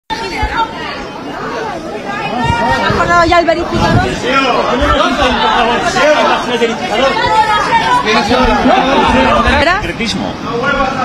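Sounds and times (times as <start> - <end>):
people talking at once: 0.1 - 11.0.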